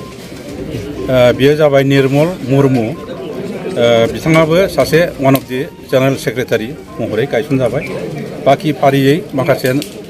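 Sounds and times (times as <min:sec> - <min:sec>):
man speaking: 0:00.8 - 0:09.9.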